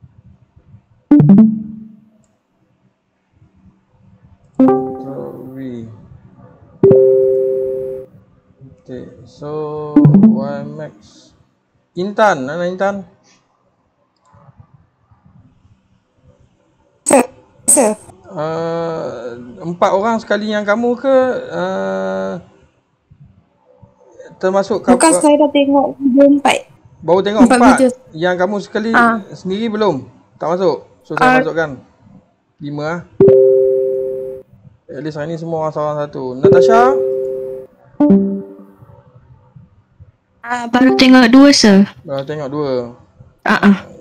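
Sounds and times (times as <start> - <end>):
two-tone notification chime: 1.1 - 2.1, 4.6 - 5.6, 6.8 - 8.1, 10.0 - 10.9, 33.2 - 34.4, 36.4 - 38.7, 40.8 - 41.4.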